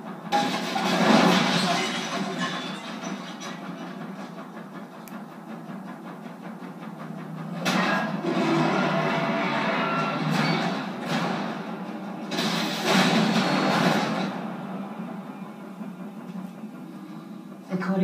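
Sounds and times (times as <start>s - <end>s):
film music bed: 3.6s - 18.0s.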